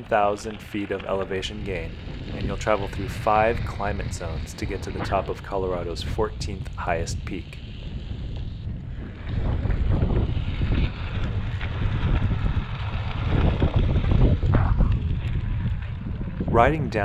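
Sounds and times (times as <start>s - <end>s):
wind buffeting the microphone: 0.0s - 17.0s
tyre rolling on asphalt: 7.7s - 17.0s.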